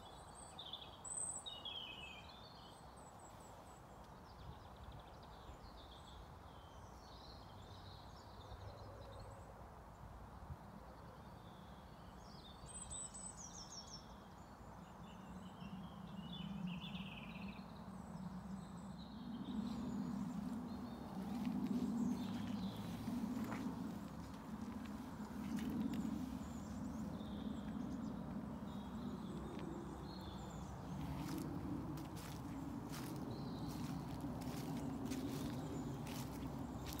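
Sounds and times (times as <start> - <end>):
birds chirping: 18.7 - 37.0.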